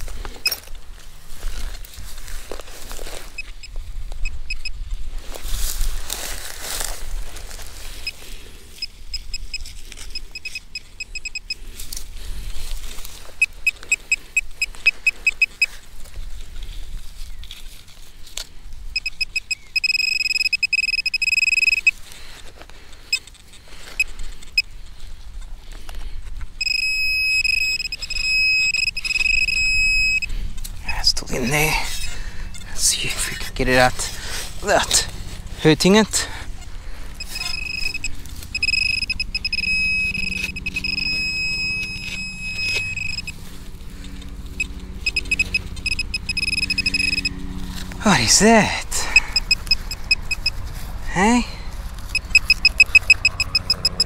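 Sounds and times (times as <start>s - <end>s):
pinpointer beeping: 3.3s - 4.8s, 8.8s - 11.6s, 13.4s - 15.7s, 19.0s - 22.0s, 26.6s - 30.3s, 37.2s - 43.4s, 44.6s - 47.4s, 49.1s - 50.6s, 52.1s - 54.0s
soil scraped by hand: 30.2s - 51.0s.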